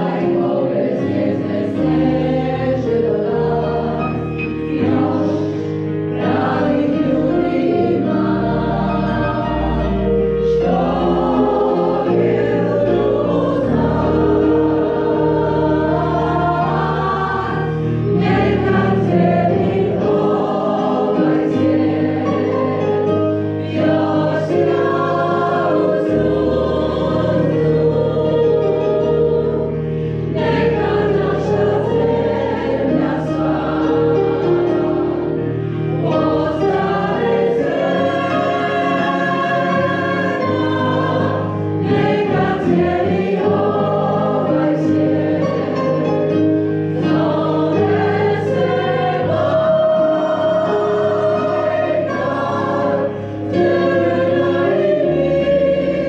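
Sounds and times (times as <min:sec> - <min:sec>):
choir singing sustained chords: 0:00.0 - 0:56.0.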